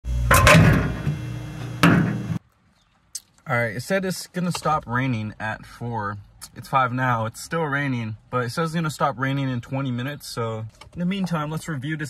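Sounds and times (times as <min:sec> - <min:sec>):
steady low hum: 0:00.0 - 0:02.4
microwave door clunk: 0:00.3 - 0:02.4.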